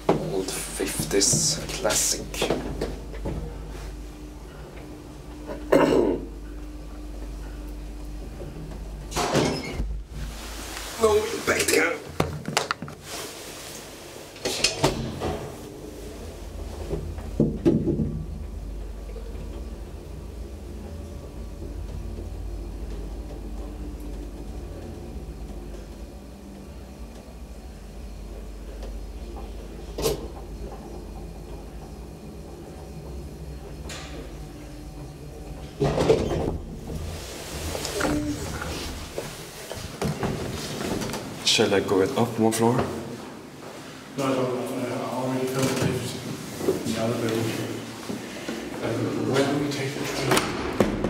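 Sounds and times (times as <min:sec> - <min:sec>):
elevator clunks: 0:00.0 - 0:10.9, 0:14.4 - 0:41.8, 0:48.0 - 0:51.0
elevator low rumble: 0:00.0 - 0:51.0.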